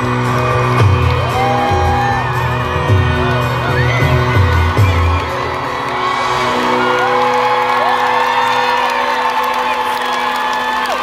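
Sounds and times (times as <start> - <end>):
live pop band playing: 0.0 - 8.9
crowd cheering and whooping: 0.0 - 11.0.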